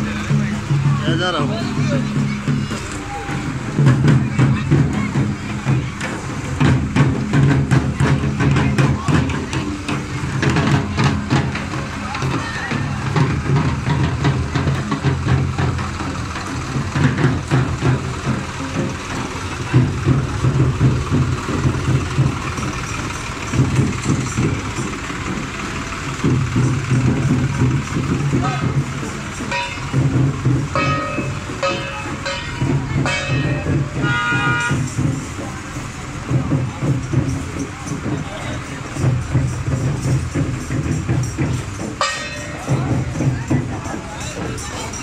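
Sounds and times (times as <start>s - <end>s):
crowd voices: 0.0s - 45.0s
music: 0.0s - 45.0s
tractor engine running: 0.0s - 45.0s.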